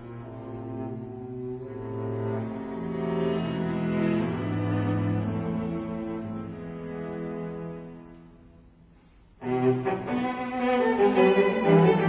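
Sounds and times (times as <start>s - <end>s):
classical chamber music: 0.0s - 12.0s.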